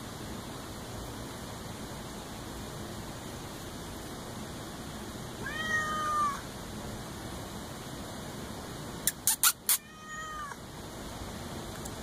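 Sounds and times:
cat meowing: 0:05.4 - 0:06.5, 0:09.4 - 0:10.6.

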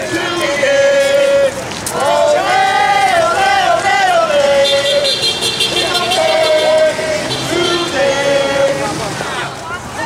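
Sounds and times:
marchers singing a chant: 0:00.0 - 0:09.6
city traffic noise: 0:00.0 - 0:10.0.

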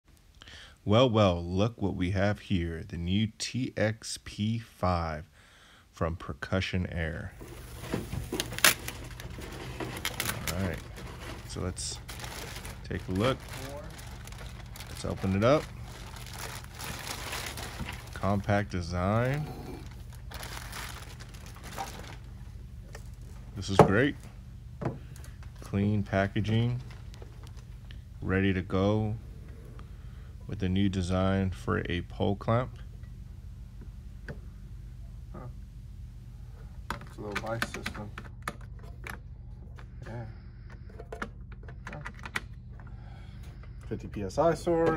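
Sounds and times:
steady low hum: 0:00.1 - 0:44.9
plastic bag crinkling: 0:07.4 - 0:23.4, 0:25.1 - 0:27.9.

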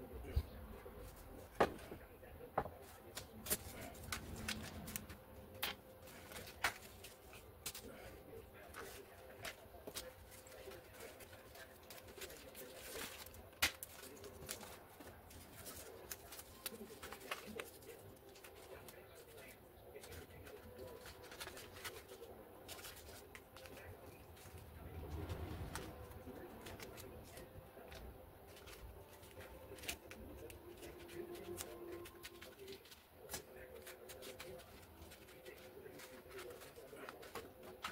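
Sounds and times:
hands handling foam parts: 0:01.0 - 0:37.9.

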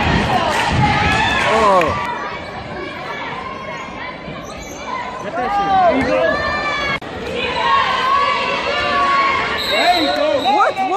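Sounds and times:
spectators chattering: 0:00.0 - 0:10.9.

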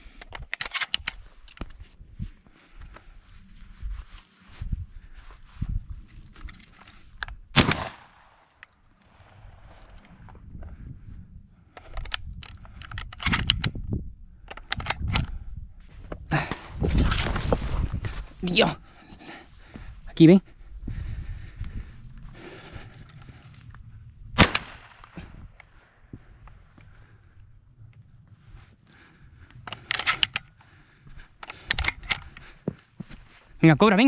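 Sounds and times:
shotgun shot: 0:07.6 - 0:08.4, 0:24.4 - 0:25.1.

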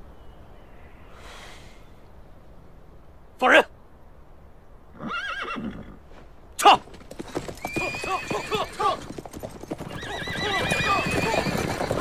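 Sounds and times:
horse whinnying: 0:05.0 - 0:06.0, 0:07.3 - 0:12.0.

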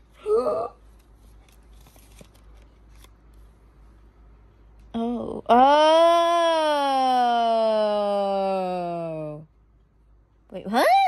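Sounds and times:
paper rustling: 0:00.8 - 0:03.5.

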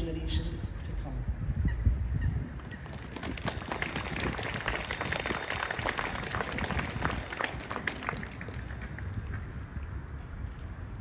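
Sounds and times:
crowd applauding: 0:02.8 - 0:09.3.

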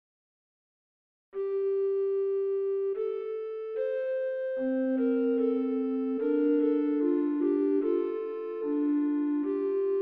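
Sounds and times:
recorder playing long steady notes: 0:01.4 - 0:10.0.

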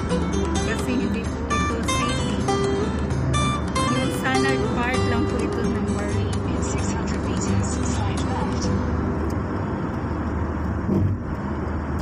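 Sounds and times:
guitar song: 0:00.0 - 0:09.5
car driving on highway: 0:00.0 - 0:12.0.

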